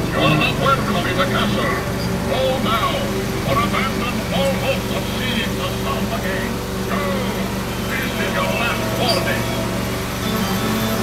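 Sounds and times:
people talking: 0.0s - 11.0s
train engine droning: 0.0s - 11.0s.

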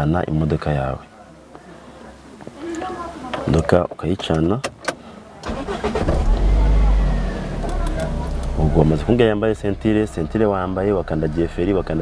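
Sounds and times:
car starter cranking: 4.8s - 11.8s
car engine rumbling: 5.4s - 12.0s.

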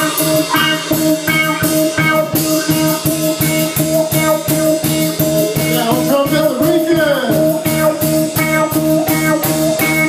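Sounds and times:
drum kit groove with cymbals: 0.0s - 10.0s
electric bass riff: 0.0s - 10.0s.

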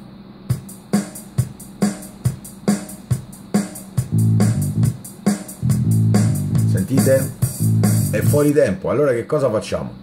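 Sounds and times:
drum pattern: 0.4s - 8.6s
bass line: 4.0s - 8.5s.

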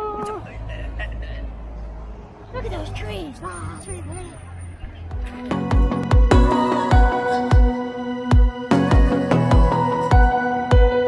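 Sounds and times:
people's voices: 0.0s - 1.8s, 2.4s - 5.7s
road traffic rumble: 0.0s - 11.0s.

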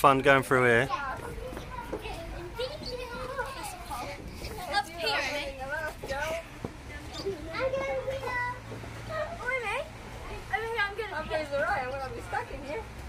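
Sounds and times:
young children babbling: 1.3s - 5.3s.

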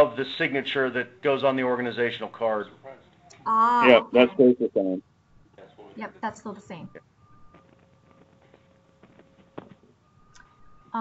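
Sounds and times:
faint steady tones: 0.0s - 11.0s.

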